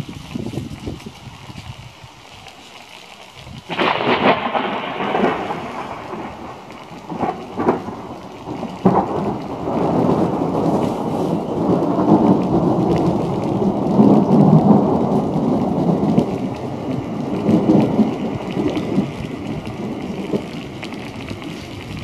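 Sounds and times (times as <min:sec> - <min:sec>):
long thunder rumble: 0:03.5 - 0:22.0
sharp thunder cracks: 0:03.6 - 0:22.0.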